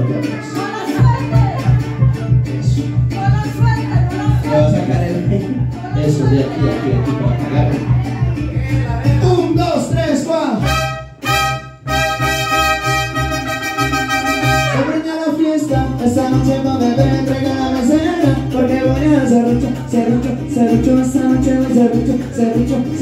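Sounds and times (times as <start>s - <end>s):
mariachi band with trumpets: 0.0s - 23.0s.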